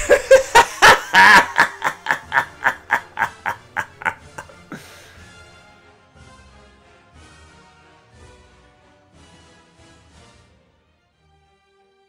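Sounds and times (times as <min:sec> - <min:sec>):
man cackling laugh: 0:00.0 - 0:05.2.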